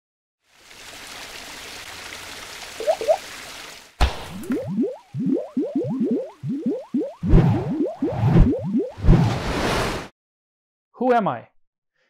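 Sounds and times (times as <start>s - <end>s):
rising bloops: 2.8s - 3.2s, 4.3s - 9.3s.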